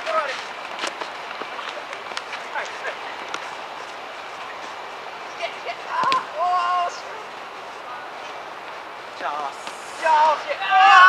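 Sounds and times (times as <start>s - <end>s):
background hiss: 0.0s - 11.0s
distant shouts: 4.4s - 8.6s, 9.2s - 11.0s
ball kicks: 6.0s - 6.4s.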